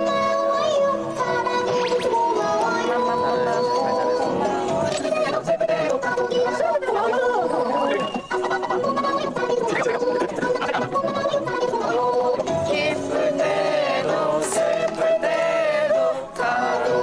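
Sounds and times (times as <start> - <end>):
sped-up song with singing: 0.0 - 17.0.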